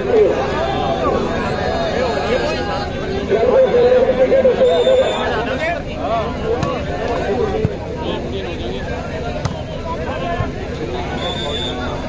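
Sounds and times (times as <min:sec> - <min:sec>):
babble of voices: 0:00.0 - 0:12.0
volleyball being struck: 0:06.6 - 0:06.8, 0:09.4 - 0:09.6.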